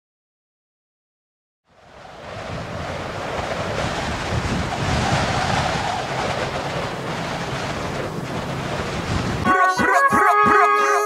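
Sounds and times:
waves crashing: 0:01.8 - 0:09.6.

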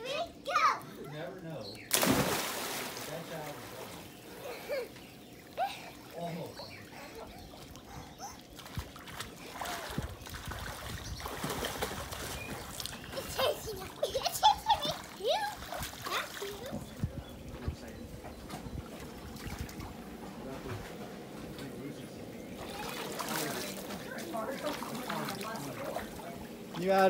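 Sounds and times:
water splashing and sloshing: 0:01.9 - 0:27.0.

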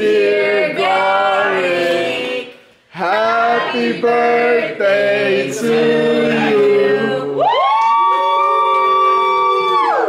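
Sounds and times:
people whooping together: 0:07.3 - 0:10.0.

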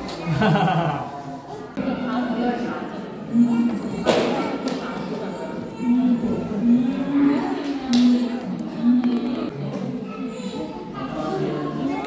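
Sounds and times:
murmuring voices: 0:00.0 - 0:12.0.

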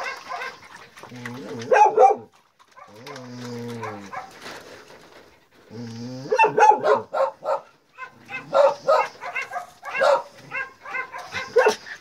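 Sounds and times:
dogs barking: 0:00.0 - 0:00.8, 0:01.6 - 0:03.2, 0:03.8 - 0:04.4, 0:06.3 - 0:12.0.

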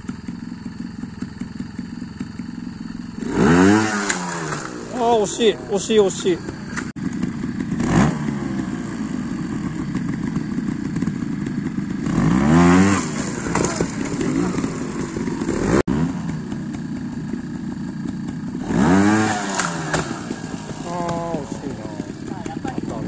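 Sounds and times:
motorcycle engine revving: 0:00.0 - 0:23.0.

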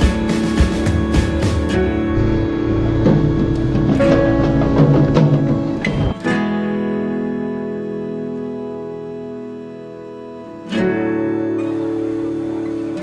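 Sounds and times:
acoustic guitar music: 0:00.0 - 0:13.0
strummed guitar chord ringing: 0:00.0 - 0:13.0.

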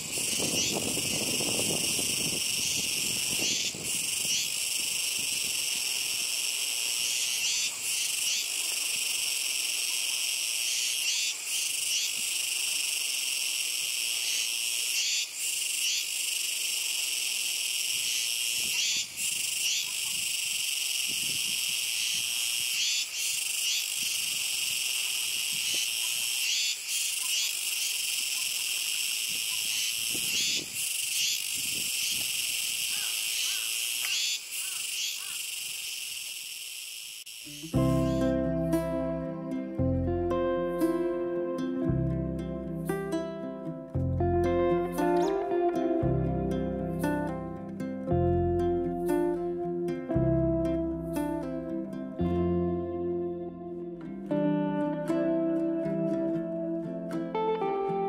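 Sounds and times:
cicadas chorus singing: 0:00.0 - 0:39.8.

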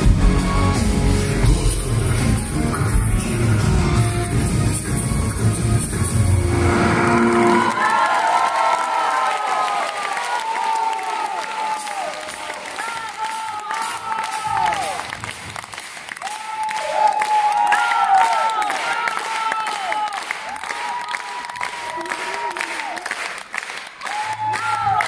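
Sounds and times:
live rock band playing: 0:00.0 - 0:07.6
crowd cheering and calling out: 0:00.0 - 0:15.3, 0:16.2 - 0:23.3, 0:24.0 - 0:25.0
audience applauding: 0:04.3 - 0:25.0.

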